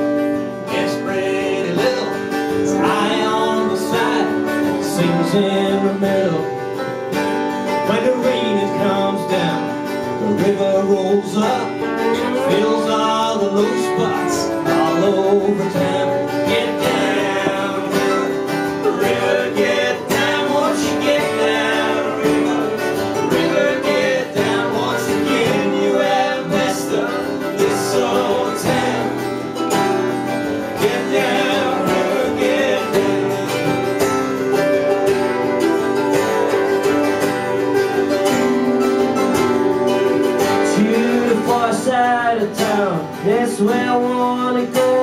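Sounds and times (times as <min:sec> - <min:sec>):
lap steel guitar: 0:00.0 - 0:45.0
mandolin: 0:00.0 - 0:45.0
strummed acoustic guitars: 0:00.0 - 0:45.0.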